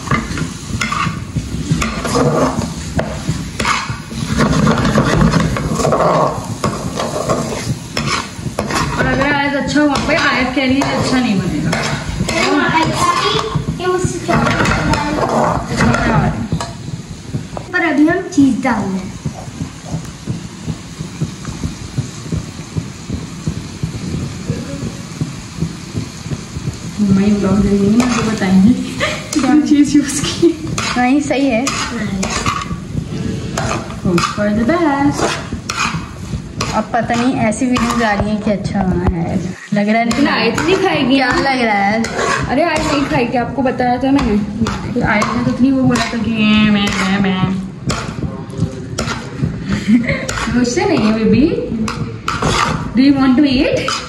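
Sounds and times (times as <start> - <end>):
metal spatula scraping a pan: 0.0 - 16.9, 27.3 - 48.3, 48.9 - 54.0
corn sizzling in a pan: 0.0 - 54.0.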